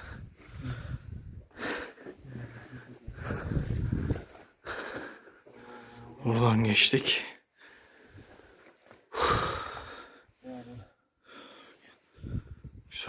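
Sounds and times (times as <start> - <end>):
person breathing heavily: 0.0 - 6.2, 7.5 - 12.8.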